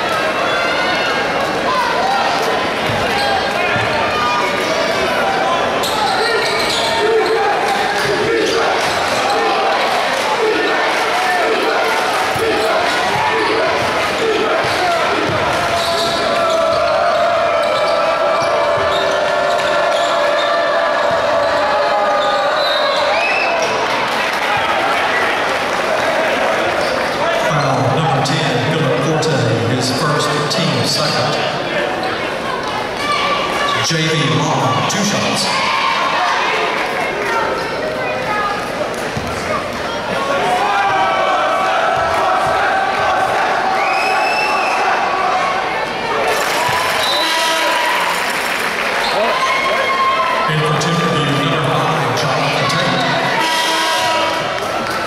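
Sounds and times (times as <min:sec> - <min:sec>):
crowd chatter and shouts: 0:00.0 - 0:55.0.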